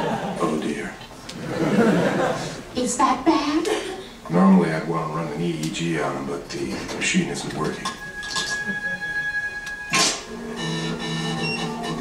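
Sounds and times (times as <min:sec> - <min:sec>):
machine hum of held tones: 0:08.0 - 0:12.0
steady electronic tone: 0:08.0 - 0:12.0.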